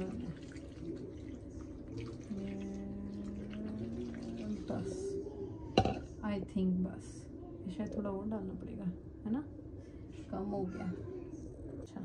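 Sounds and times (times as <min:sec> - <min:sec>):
water pouring and splashing: 0:00.0 - 0:05.0
steady low hum: 0:00.0 - 0:12.0.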